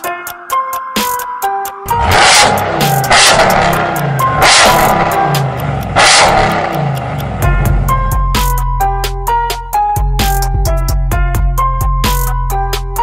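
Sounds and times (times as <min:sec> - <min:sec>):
music with heavy bass beat: 0:00.0 - 0:13.0
truck engine revving hard: 0:01.9 - 0:08.0.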